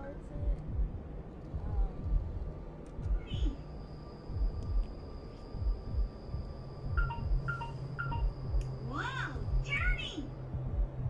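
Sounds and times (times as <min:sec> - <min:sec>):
low repeating thump: 0:04.3 - 0:04.9, 0:05.6 - 0:07.5
toy two-note beep: 0:07.0 - 0:08.3.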